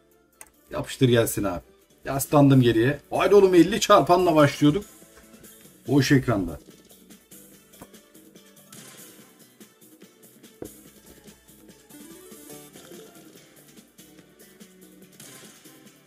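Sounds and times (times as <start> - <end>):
light electronic music: 0.0 - 16.0.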